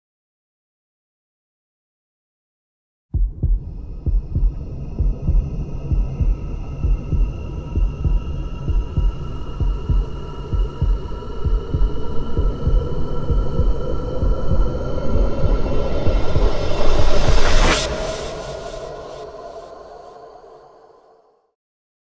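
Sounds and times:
low heartbeat-like thumps: 0:03.1 - 0:19.5
high synth drone: 0:04.6 - 0:20.6.

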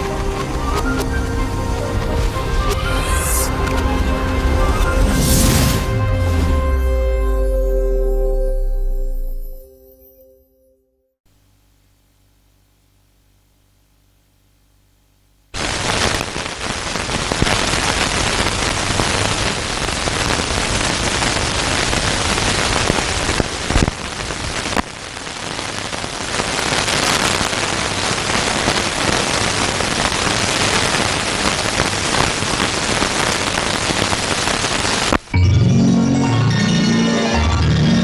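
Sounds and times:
rain-like hiss and crackle: 0:00.0 - 0:07.2, 0:15.5 - 0:35.4.

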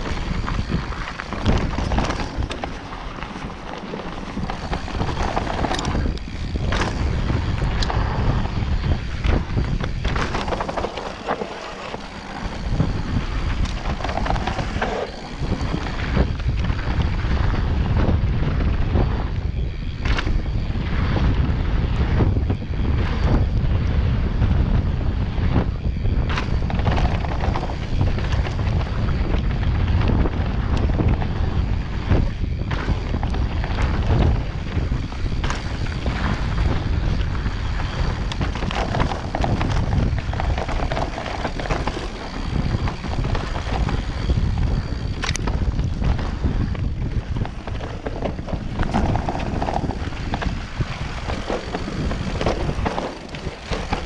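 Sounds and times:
tyres rolling on dirt: 0:00.0 - 0:17.6, 0:26.4 - 0:54.0
bike knocking and rattling: 0:00.0 - 0:54.0
wind buffeting microphone: 0:00.0 - 0:54.0.

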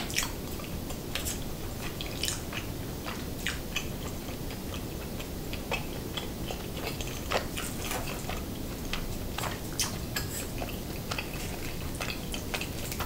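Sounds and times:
wet chewing mouth clicks: 0:00.2 - 0:13.0.

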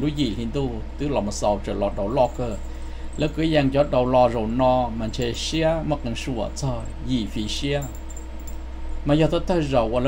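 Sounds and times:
man's voice: 0:00.0 - 0:02.6, 0:03.2 - 0:08.0
low steady hum: 0:00.0 - 0:10.0
coin pendants jingling: 0:02.1 - 0:03.7, 0:04.4 - 0:05.6, 0:06.7 - 0:08.7.

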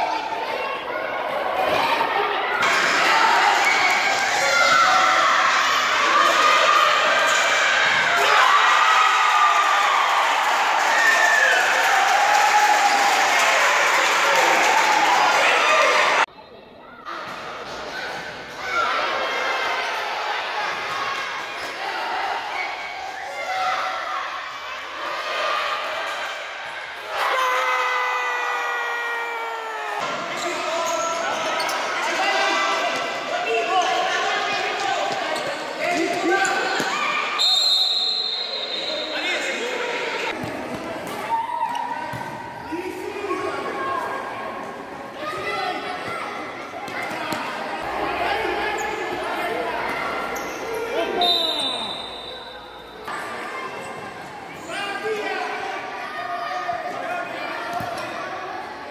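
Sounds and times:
people shouting: 0:27.0 - 0:30.2
high whistle: 0:37.4 - 0:39.2, 0:51.2 - 0:53.1.

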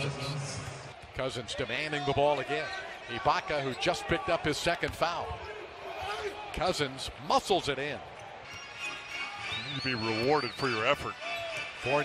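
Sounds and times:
crowd noise: 0:00.0 - 0:12.0
music: 0:08.4 - 0:12.0.

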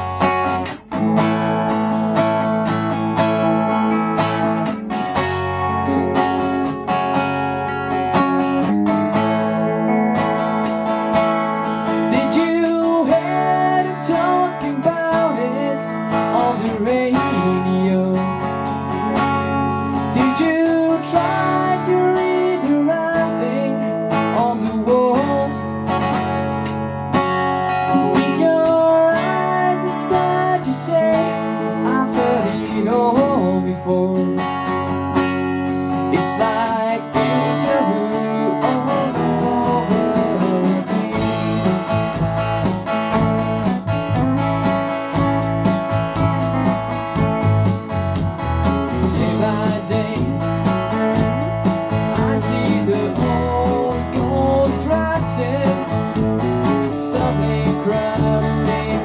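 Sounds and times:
acoustic guitar strumming: 0:00.0 - 0:59.0
electric guitar: 0:00.0 - 0:59.0
man singing: 0:12.0 - 0:18.6, 0:20.0 - 0:25.8, 0:27.8 - 0:34.8, 0:36.0 - 0:42.2, 0:48.9 - 0:59.0.

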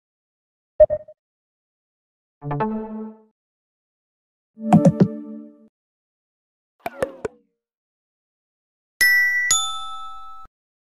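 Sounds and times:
bright chime notes: 0:09.0 - 0:10.5.

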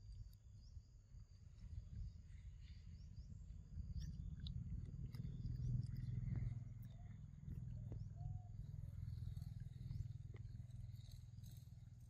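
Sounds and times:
low fluttering rumble: 0:00.0 - 0:12.0.

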